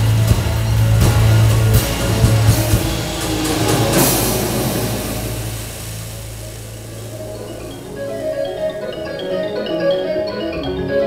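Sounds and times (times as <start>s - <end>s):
live instrumental band: 0.0s - 11.0s
cymbal crash: 0.1s - 9.1s.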